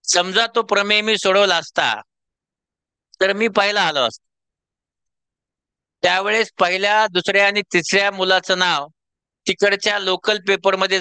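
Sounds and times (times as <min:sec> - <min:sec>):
man speaking into a microphone: 0:00.0 - 0:02.1, 0:03.2 - 0:04.2, 0:06.0 - 0:11.0.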